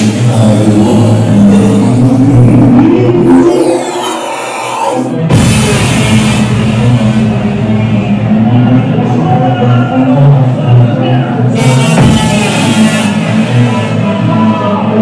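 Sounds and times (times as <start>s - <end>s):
psytrance through club speakers: 0.0s - 15.0s.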